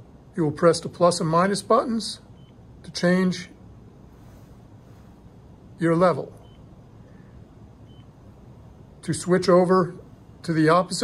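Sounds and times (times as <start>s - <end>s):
room tone hum: 0.0s - 11.0s
faint high-pitched beep: 2.3s - 2.6s, 6.4s - 6.7s, 7.8s - 8.2s.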